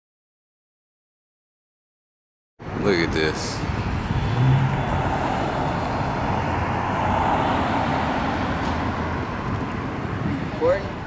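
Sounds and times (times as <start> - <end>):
car driving road noise: 2.6 - 11.0.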